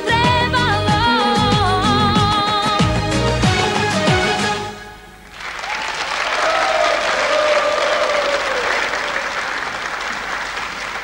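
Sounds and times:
pop song: 0.0 - 4.6
audience applauding: 5.3 - 11.0.

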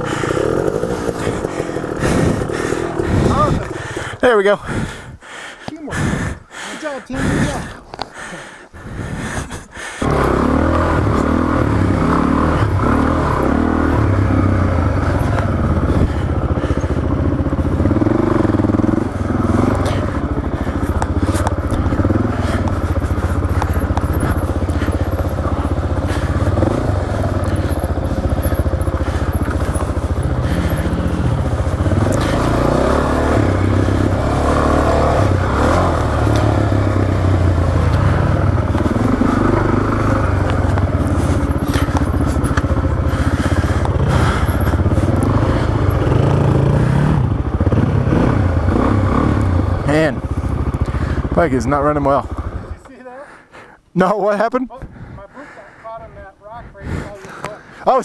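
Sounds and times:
bike scraping over rocks: 0.0 - 4.6, 19.4 - 32.8, 37.5 - 45.6
motorcycle engine revving: 0.0 - 5.2, 5.9 - 52.9.

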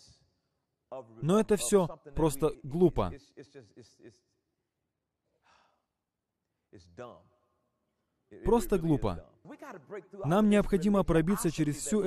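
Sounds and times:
faint breath: 5.4 - 5.9.

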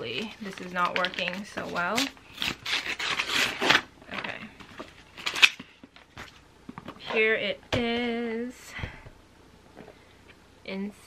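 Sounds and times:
wrapping paper tearing and crinkling: 0.1 - 3.9, 5.1 - 5.6.

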